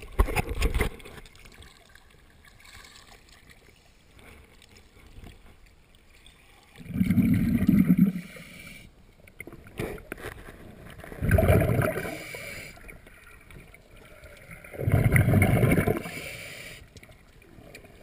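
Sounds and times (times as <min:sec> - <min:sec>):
regulator exhaust bubbles underwater: 0:06.8 - 0:08.2, 0:11.2 - 0:12.2, 0:14.6 - 0:16.1.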